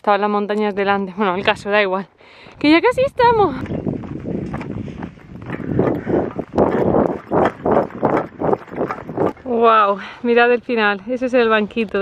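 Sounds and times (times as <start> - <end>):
footsteps on dirt trail: 2.4 - 12.0.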